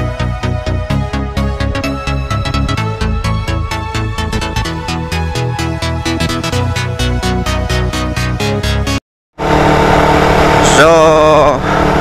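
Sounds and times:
motorcycle engine hum: 0.0 - 8.2, 9.4 - 12.0
wind rush on microphone: 1.4 - 5.0
person speaking: 10.6 - 11.6.

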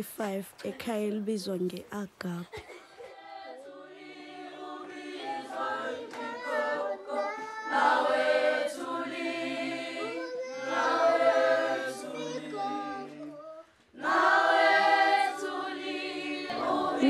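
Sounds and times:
children's choir singing: 3.0 - 17.0.

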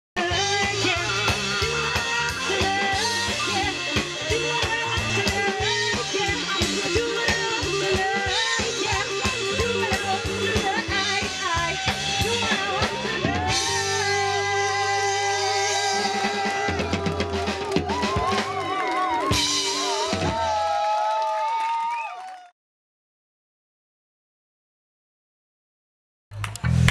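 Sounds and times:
person singing: 0.2 - 20.6
rock band playing live: 0.2 - 20.9
drum kit beat: 0.2 - 21.0.

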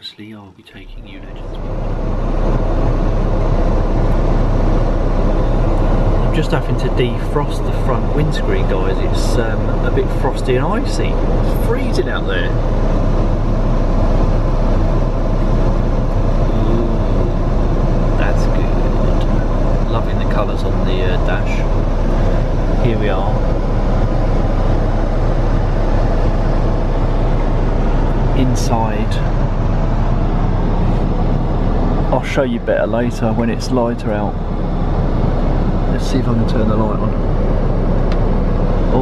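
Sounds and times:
car engine idling: 0.7 - 39.0
heater fan rushing air: 0.8 - 39.0.

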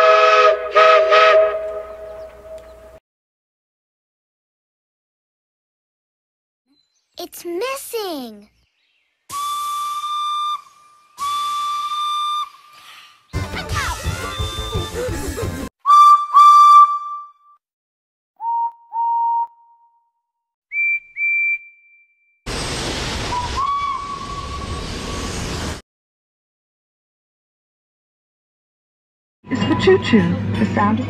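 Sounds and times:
steam whistle toots: 0.0 - 2.8, 9.3 - 12.7, 15.8 - 17.3, 23.2 - 25.4
steam locomotive venting steam: 22.5 - 25.8.

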